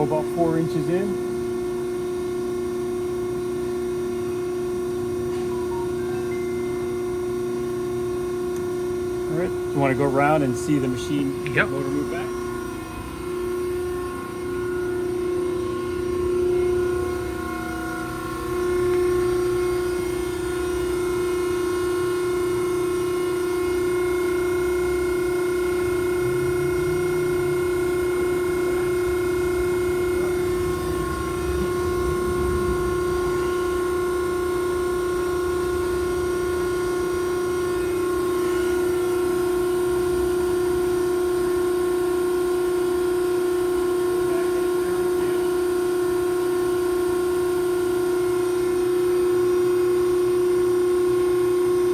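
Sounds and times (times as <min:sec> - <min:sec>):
hydraulic pump motor humming: 0:00.0 - 0:51.9.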